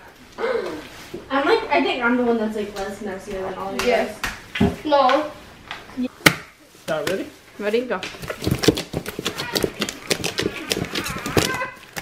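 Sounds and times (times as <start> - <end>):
hands squishing slime: 8.2 - 12.0.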